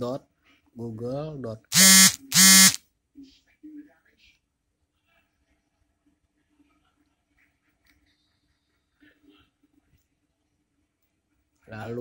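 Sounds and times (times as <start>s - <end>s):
loud buzzing tones: 1.7s - 2.8s.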